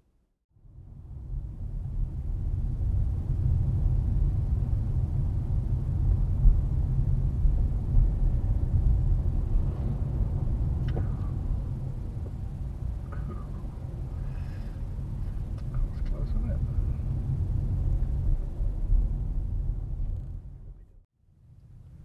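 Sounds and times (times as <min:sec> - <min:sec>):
car road rumble: 0:00.6 - 0:21.0.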